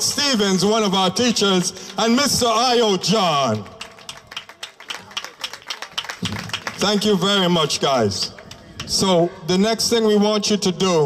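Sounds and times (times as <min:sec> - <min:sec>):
light scattered applause: 0:03.2 - 0:09.2.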